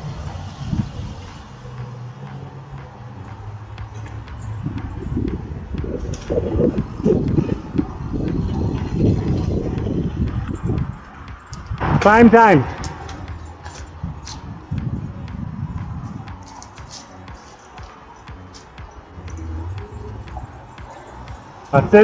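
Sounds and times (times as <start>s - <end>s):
bike clicks and rattles: 0.0s - 22.0s.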